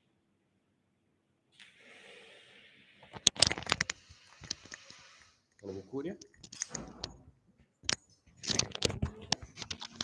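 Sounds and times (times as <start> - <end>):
faint hiss: 1.5 - 3.2, 3.8 - 6.2.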